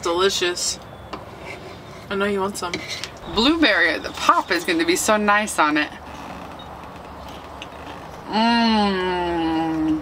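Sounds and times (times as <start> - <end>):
low hum and hiss: 1.9 - 6.1.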